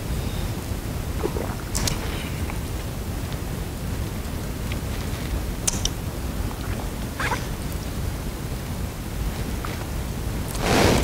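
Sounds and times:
small sharp clicks: 5.6s - 6.0s.

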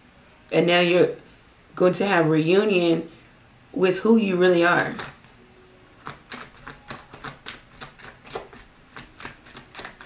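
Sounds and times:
cards being shuffled: 4.9s - 5.2s, 6.0s - 10.0s.

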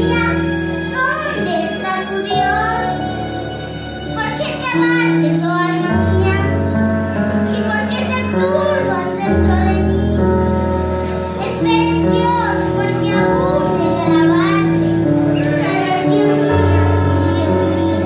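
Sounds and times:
child singing: 0.0s - 3.2s, 4.1s - 6.6s, 7.5s - 10.4s, 11.4s - 18.0s
electronic keyboard accompaniment: 0.0s - 18.0s.

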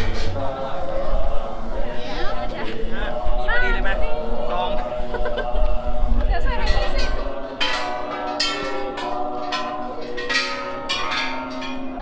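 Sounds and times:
bronze bells clanging: 6.6s - 12.0s.

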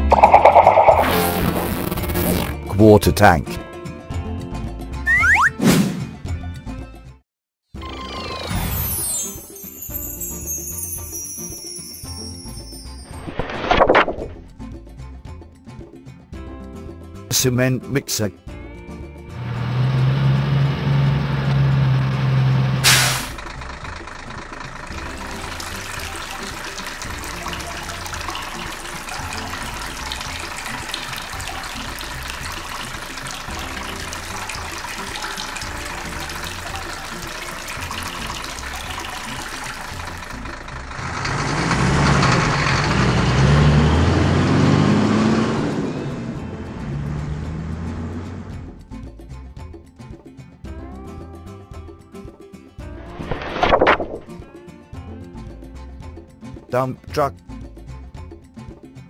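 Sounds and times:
truck engine: 0.0s - 3.4s, 19.3s - 48.9s.

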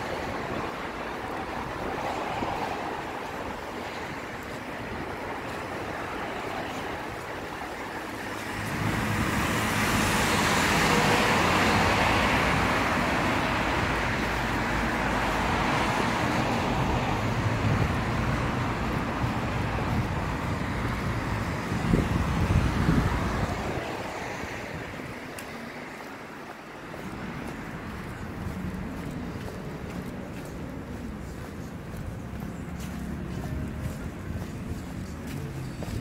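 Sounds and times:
engine rumble: 6.7s - 36.0s.

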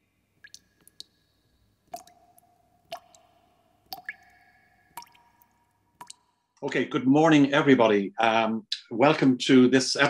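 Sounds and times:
drip-like ringing plinks: 0.4s - 6.5s.

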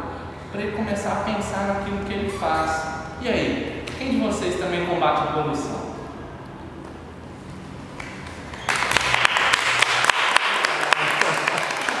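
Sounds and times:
group applause: 8.0s - 12.0s.

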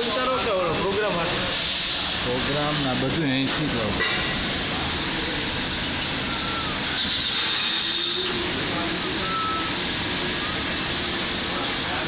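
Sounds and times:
lathe cutting metal with coolant: 0.0s - 12.0s
faint high tone: 6.3s - 7.0s, 9.1s - 9.8s.

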